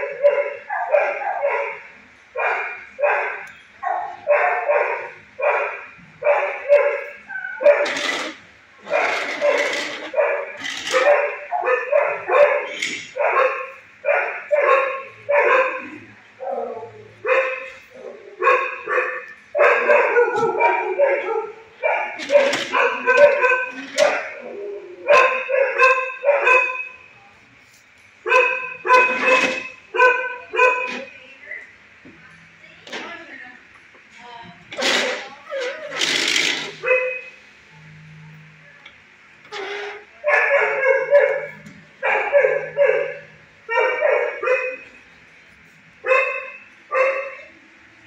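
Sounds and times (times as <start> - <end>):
dogs barking: 0.0 - 27.1, 28.2 - 31.2, 34.8 - 37.4, 39.5 - 45.1, 46.0 - 47.5.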